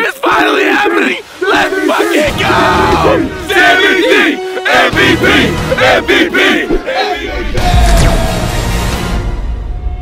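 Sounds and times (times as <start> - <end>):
men yelling and cheering: 0.0 - 9.1.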